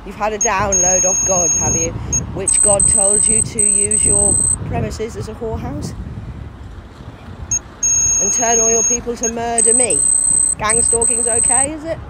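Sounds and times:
wind rumbling on microphone: 0.0 - 12.0
steady high-pitched tone: 0.4 - 1.9, 2.5 - 4.6, 7.5 - 11.7.

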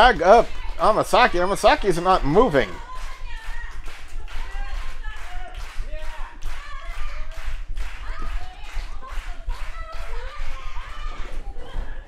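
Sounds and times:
crowd clapping in rhythm: 0.0 - 12.0.

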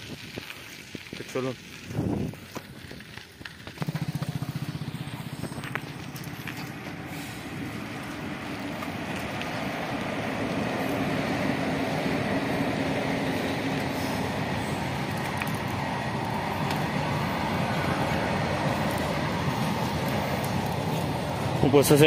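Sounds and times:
vehicle rumbling on dirt road: 0.0 - 22.0.

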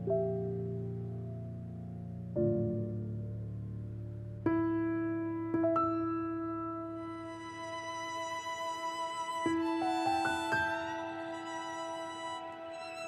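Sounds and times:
soft piano notes: 0.0 - 13.0
high violin line: 7.1 - 13.0.

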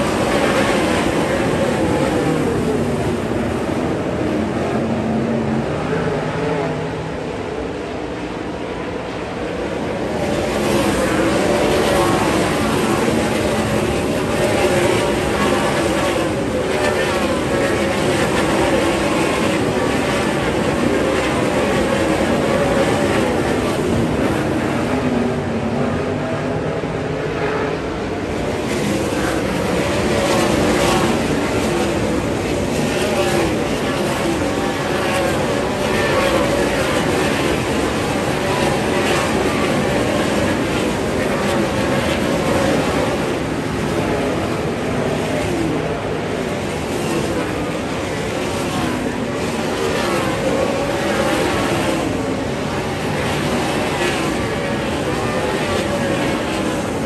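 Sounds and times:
race car engines roaring: 0.0 - 57.0.

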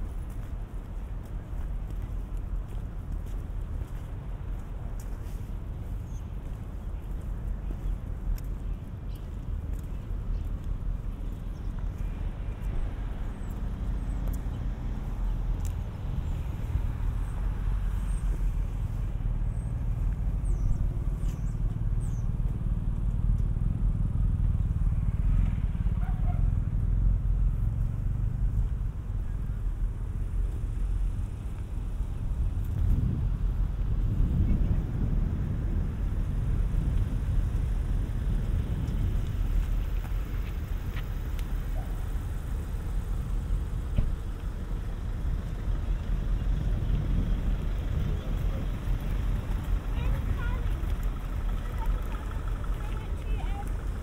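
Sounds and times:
vehicle engine rumbling: 0.0 - 54.0.

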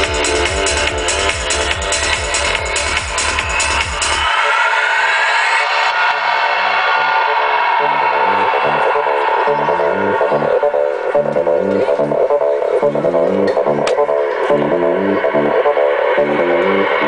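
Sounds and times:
electronic dance music: 0.0 - 17.0
pulsing synth bassline: 0.0 - 17.0
rising synth sweep: 4.0 - 17.0.

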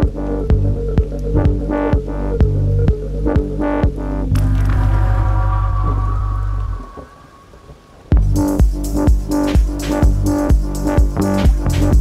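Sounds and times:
deep house music: 0.0 - 7.2, 8.1 - 12.0
rumbling noisy texture: 0.0 - 10.3.

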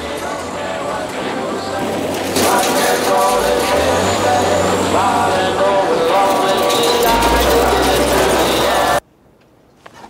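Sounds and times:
bulldozer engine rumbling: 0.0 - 9.0
car being crushed: 1.8 - 9.0.

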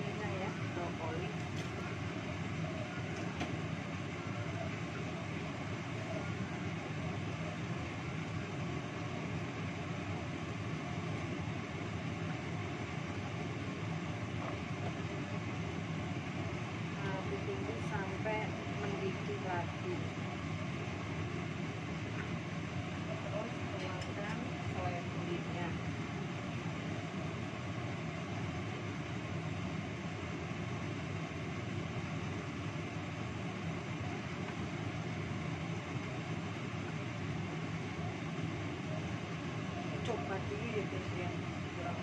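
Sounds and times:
gas stove burner rumbling: 0.0 - 42.0.

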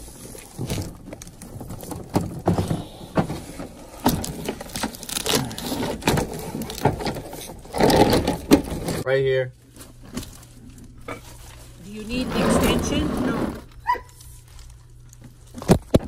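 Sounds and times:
plastic appliance knocking and scraping: 5.6 - 9.0, 12.2 - 13.7.

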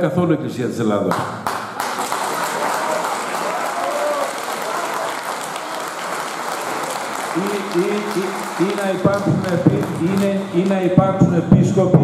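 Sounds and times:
audience applauding: 1.1 - 11.1
person speaking: 7.4 - 12.0.

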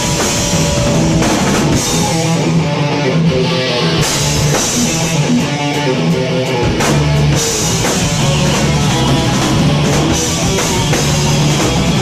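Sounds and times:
loud punk metal band: 0.0 - 12.0
drum hits: 6.7 - 12.0.

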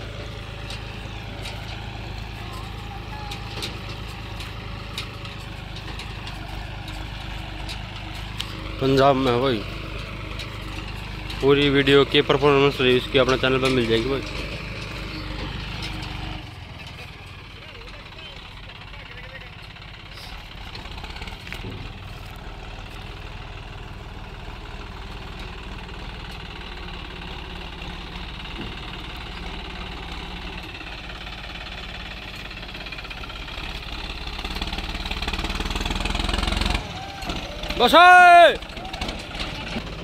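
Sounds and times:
tractor diesel engine running: 0.0 - 40.0.

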